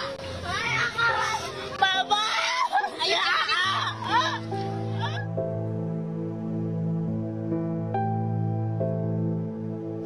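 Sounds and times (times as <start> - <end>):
people calling out: 0.0 - 5.3
background music with held notes: 0.0 - 10.0.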